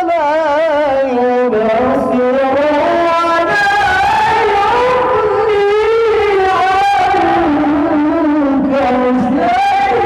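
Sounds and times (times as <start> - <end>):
man chanting recitation: 0.0 - 10.0.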